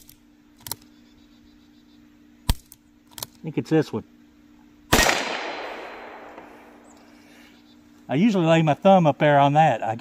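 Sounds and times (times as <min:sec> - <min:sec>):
revolver gunshot echoing: 0:04.9 - 0:07.0.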